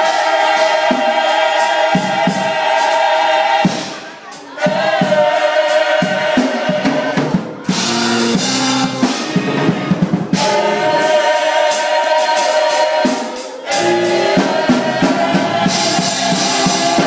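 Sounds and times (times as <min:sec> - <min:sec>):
choir singing held chords: 0:00.0 - 0:17.0
drum hits: 0:00.0 - 0:17.0.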